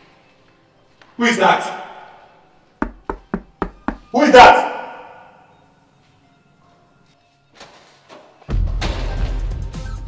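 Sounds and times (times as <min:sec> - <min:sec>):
knocking on door: 0:02.8 - 0:04.1.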